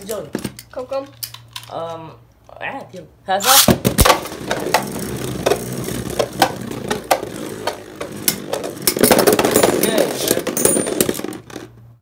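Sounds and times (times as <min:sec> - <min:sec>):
spinning tops whirring: 0:04.1 - 0:11.6.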